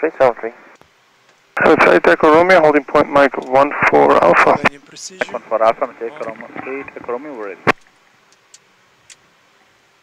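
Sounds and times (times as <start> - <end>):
faint radio hiss: 0.0 - 10.0
faint ticks: 7.7 - 9.3.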